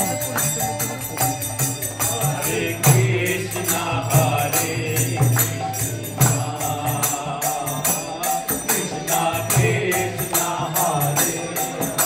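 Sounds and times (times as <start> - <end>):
harmonium: 0.0 - 12.0
small hand cymbals jingling: 0.0 - 12.0
group chanting: 2.0 - 12.0.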